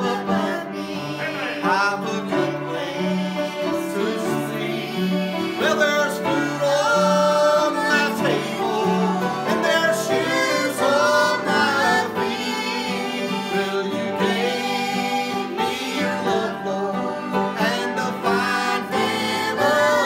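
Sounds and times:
man and girls singing gospel: 0:00.0 - 0:20.0
strummed acoustic guitar: 0:00.0 - 0:20.0.

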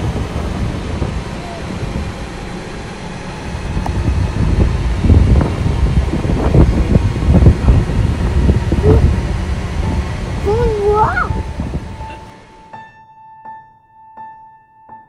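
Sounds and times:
wind buffeting microphone: 0:00.0 - 0:12.6.

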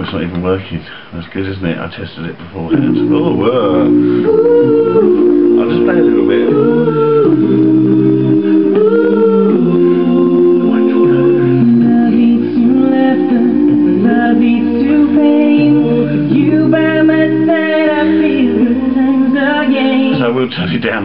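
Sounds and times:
male voices singing in harmony: 0:02.7 - 0:20.4.

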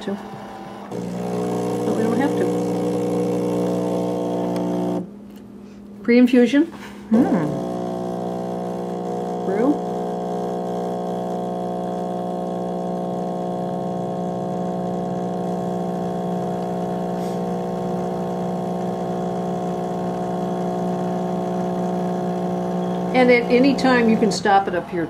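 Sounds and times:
espresso machine pump humming: 0:00.0 - 0:05.1, 0:07.1 - 0:24.4.

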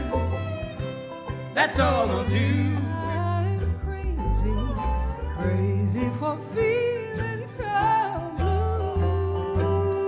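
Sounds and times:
held melody line: 0:00.0 - 0:10.0
strummed acoustic guitar: 0:00.0 - 0:10.0
upright bass: 0:00.0 - 0:10.0.

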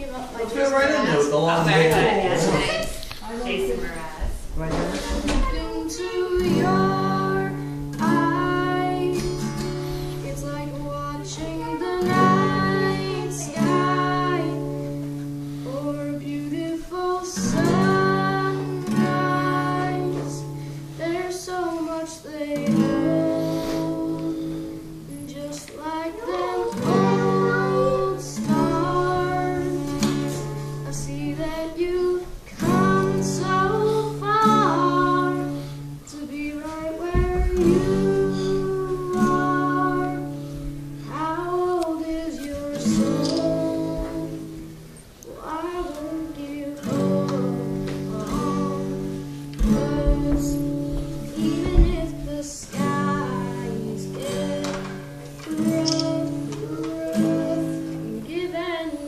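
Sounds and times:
acoustic guitar chords: 0:00.0 - 0:59.0
boy singing: 0:00.0 - 0:59.0.

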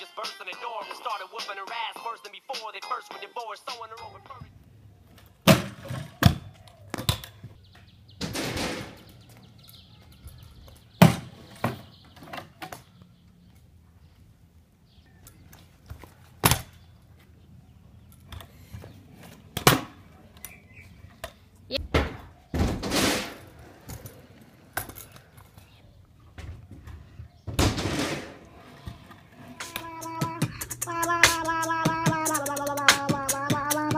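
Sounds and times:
wheels rolling over asphalt: 0:04.5 - 0:21.7, 0:22.9 - 0:30.9.

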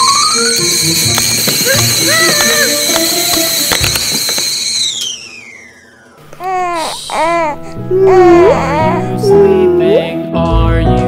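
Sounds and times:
kettle whistling: 0:00.0 - 0:06.1.

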